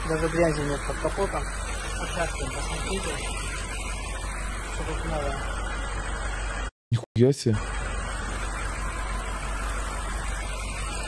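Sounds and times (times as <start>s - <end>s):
steady hiss: 0.0s - 6.5s
constant low hum: 0.0s - 6.7s, 7.5s - 11.0s.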